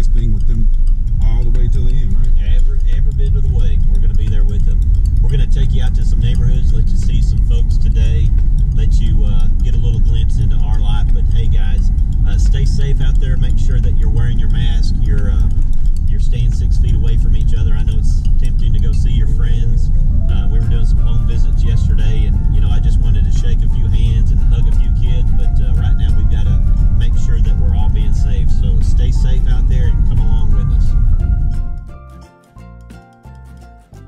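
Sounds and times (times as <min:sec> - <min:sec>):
voices talking: 0:00.0 - 0:31.4
road and engine rumble: 0:00.0 - 0:34.0.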